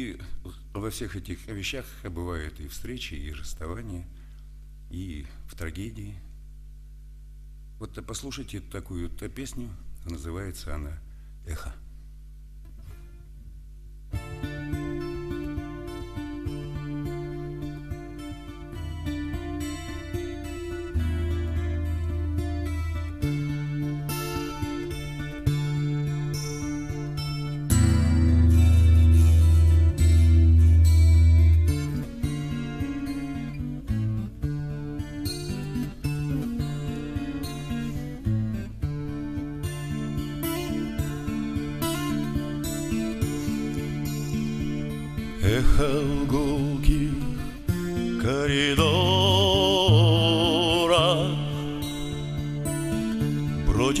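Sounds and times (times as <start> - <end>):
acoustic guitar picking: 12.6 - 54.0.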